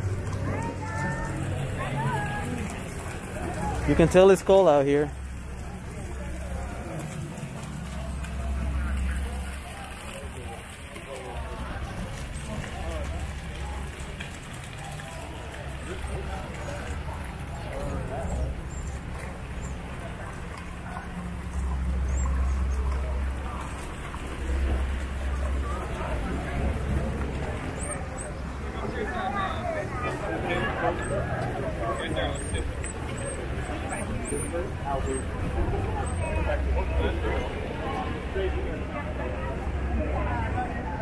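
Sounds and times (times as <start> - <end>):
distant voices: 0.0 - 41.0
fountain water splashing: 0.0 - 41.0.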